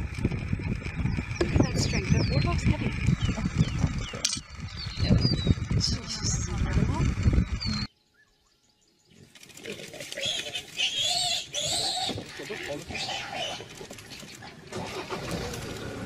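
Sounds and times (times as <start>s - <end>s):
loud low rumble: 0.0s - 7.9s
birds chirping: 0.0s - 14.7s.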